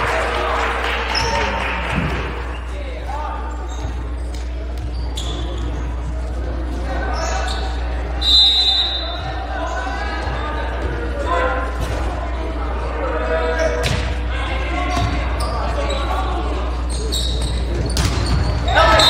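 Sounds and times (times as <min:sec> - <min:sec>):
crowd chatter: 0:00.0 - 0:19.0
shrill referee whistle: 0:07.5 - 0:09.3, 0:18.6 - 0:19.0
ball bouncing on court floor: 0:14.9 - 0:15.5, 0:17.5 - 0:18.7.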